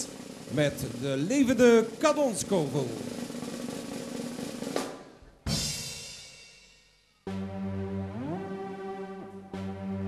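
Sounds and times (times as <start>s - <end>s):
drum roll: 0.0s - 6.6s.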